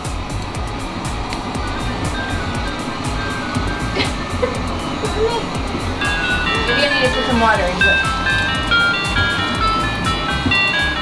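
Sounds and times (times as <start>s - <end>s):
background music with steady beat: 0.0s - 11.0s
toy playing tinny electronic melody: 0.6s - 11.0s.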